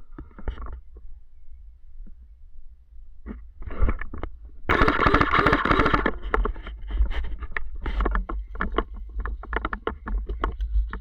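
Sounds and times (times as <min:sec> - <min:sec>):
twigs and brush crackling: 0:03.7 - 0:11.0.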